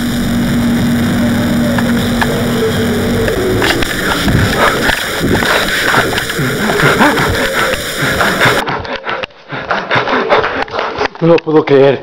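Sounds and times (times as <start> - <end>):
electronic static: 0.0 - 8.6
low hum: 0.0 - 10.7.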